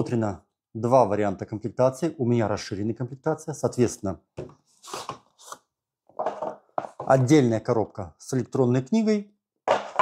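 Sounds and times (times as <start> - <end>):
box knocking on wooden table: 6.2 - 7.2.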